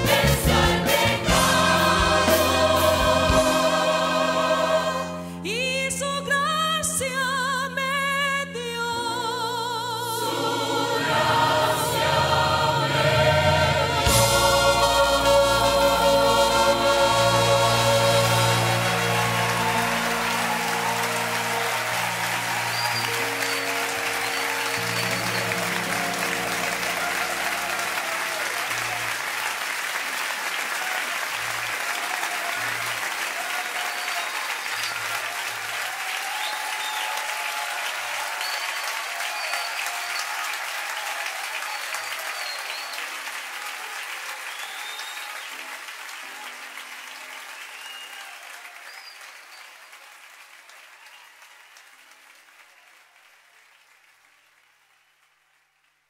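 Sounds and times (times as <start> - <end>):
audience applauding and cheering: 0.0 - 5.7, 10.2 - 56.0
whistles from audience: 19.8 - 29.1, 33.5 - 50.2, 50.8 - 51.9.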